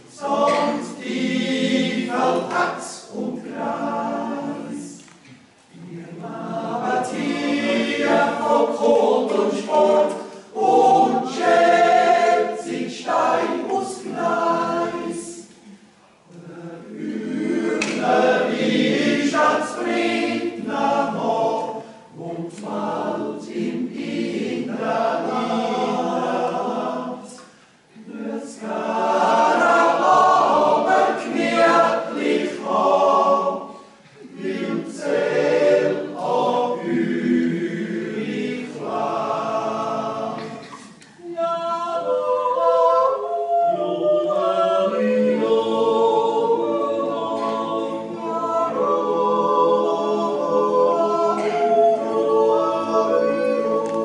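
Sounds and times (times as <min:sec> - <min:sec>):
choir singing unaccompanied: 0:00.0 - 0:05.1, 0:05.7 - 0:54.0.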